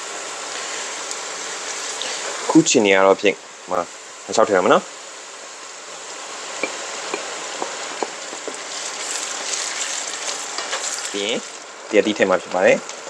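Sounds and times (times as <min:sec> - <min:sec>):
oil sizzling in a wok: 0:00.0 - 0:13.0.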